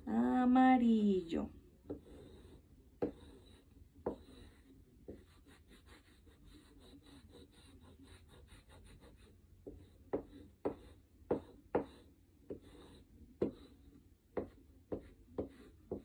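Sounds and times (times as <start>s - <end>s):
chalk rubbing on paper: 1.9s - 16.0s.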